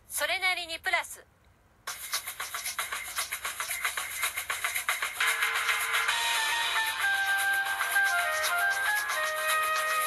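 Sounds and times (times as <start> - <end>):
shaker percussion rhythm: 1.9 - 10.0.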